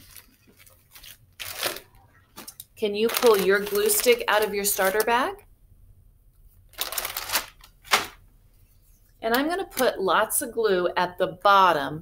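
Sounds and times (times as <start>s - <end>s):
plastic bag crinkling: 0.0s - 5.4s, 6.6s - 8.2s.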